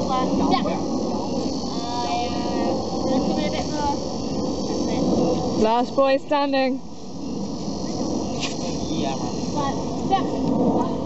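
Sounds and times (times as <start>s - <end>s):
insects droning: 0.0s - 11.0s
low outdoor noise: 0.0s - 11.0s.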